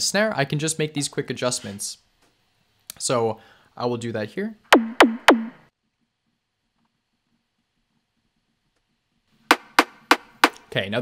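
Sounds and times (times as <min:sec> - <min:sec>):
synthesized snare hits: 0:04.8 - 0:05.6.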